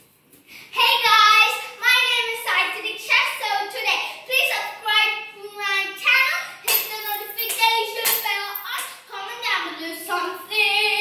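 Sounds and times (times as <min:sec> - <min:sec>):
girl's sing-song call: 0:03.0 - 0:11.0.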